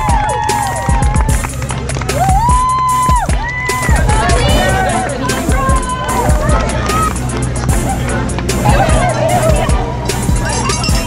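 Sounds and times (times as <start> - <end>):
song with drums and bass: 0.0 - 11.0.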